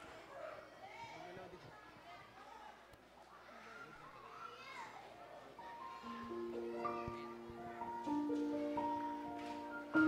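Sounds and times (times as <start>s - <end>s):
faint chatter of young voices: 0.0s - 10.0s.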